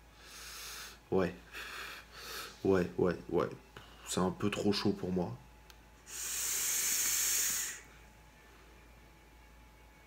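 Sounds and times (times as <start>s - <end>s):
vapour hissing through dripper: 6.0s - 7.9s.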